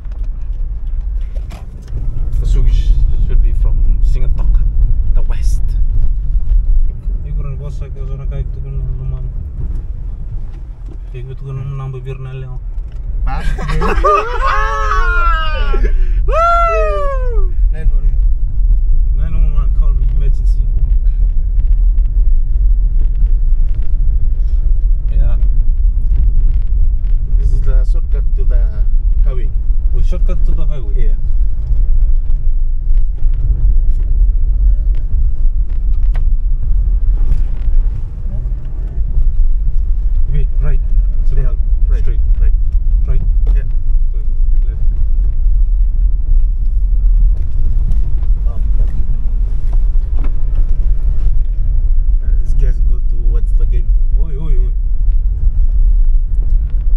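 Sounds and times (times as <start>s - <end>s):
car engine and tyres rumbling: 0.0s - 56.9s.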